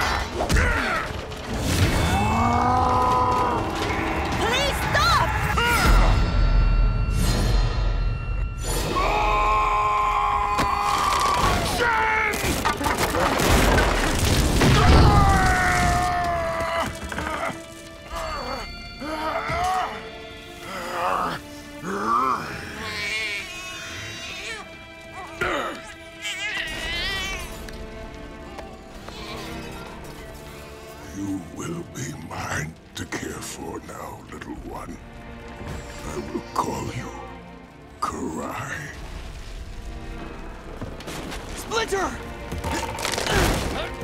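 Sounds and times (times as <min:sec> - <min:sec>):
baby crying: 0:22.4 - 0:27.5.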